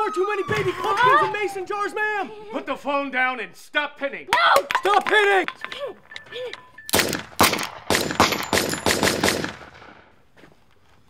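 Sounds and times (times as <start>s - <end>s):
pistol shots: 6.9s - 10.1s.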